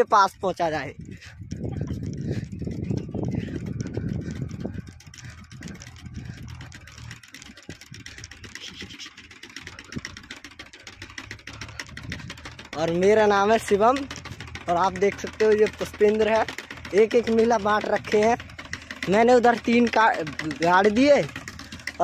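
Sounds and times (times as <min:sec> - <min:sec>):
heavy rumbling noise: 0:00.9 - 0:09.0
distant engine humming: 0:00.9 - 0:22.0.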